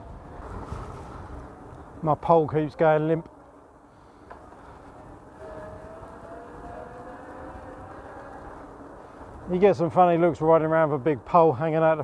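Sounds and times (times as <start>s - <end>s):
wind noise: 0.0s - 11.3s
tyres rumbling on road: 4.2s - 11.0s.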